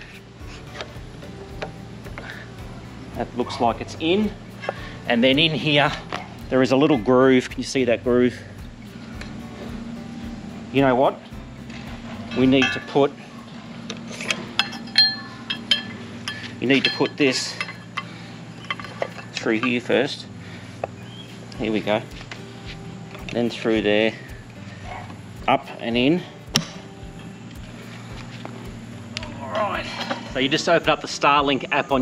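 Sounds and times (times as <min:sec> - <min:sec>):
low background hum: 0:00.0 - 0:32.0
sharp metal strikes ringing: 0:12.3 - 0:13.1, 0:14.5 - 0:17.8
metal parts clinking and tapping: 0:13.9 - 0:20.0.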